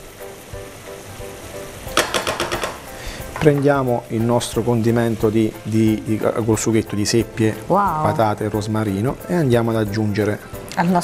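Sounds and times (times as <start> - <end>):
risotto simmering and sizzling: 0.0 - 11.0
soft background music: 0.0 - 11.0.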